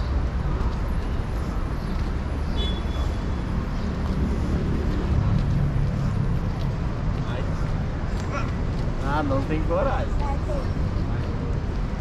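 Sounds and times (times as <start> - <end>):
low traffic rumble: 0.0 - 12.0
people's voices: 6.6 - 12.0.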